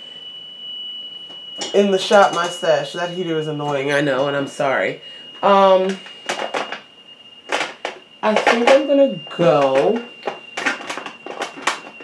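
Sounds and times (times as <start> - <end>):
heater whine: 0.0 - 12.0
makeup containers clinking: 1.6 - 2.6, 7.5 - 8.9.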